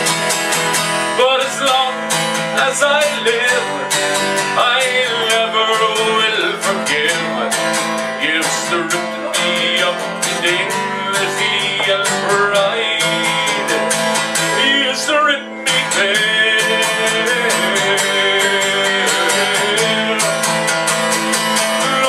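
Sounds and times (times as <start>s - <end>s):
acoustic guitars strummed and picked: 0.0s - 22.0s.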